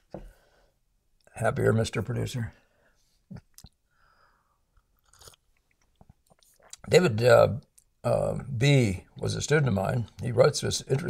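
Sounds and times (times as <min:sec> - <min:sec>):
man speaking: 0:01.3 - 0:02.6, 0:06.7 - 0:11.0
mouth noises and clicks: 0:03.3 - 0:03.8, 0:04.8 - 0:06.9, 0:07.6 - 0:08.0
swallow: 0:05.0 - 0:06.9.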